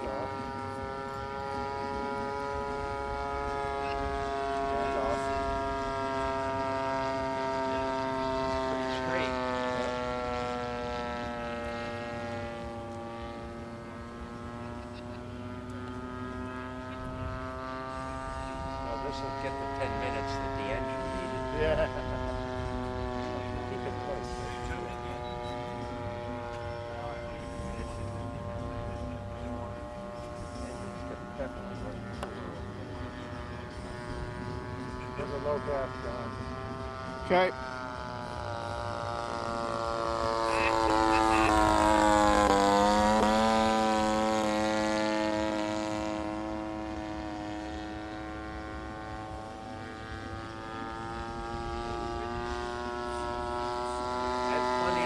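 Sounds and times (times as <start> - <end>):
model airplane engine running: 0.0 - 55.0.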